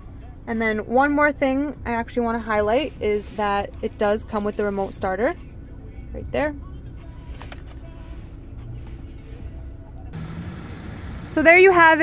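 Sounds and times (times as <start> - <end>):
car engine idling: 6.6 - 12.0.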